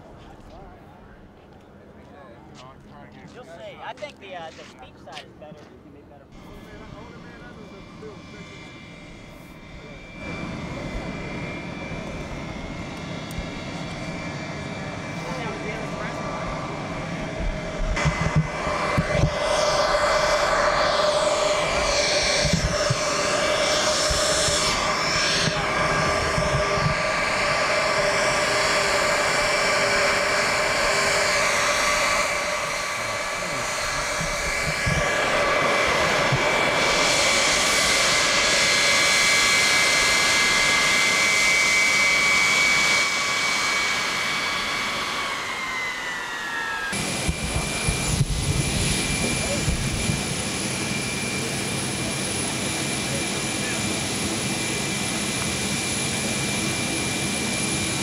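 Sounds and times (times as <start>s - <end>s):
jet engines whining: 0.0s - 58.0s.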